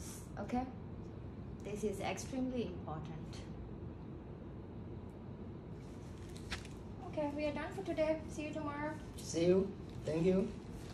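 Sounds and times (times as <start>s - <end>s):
low room hum: 0.0s - 10.9s.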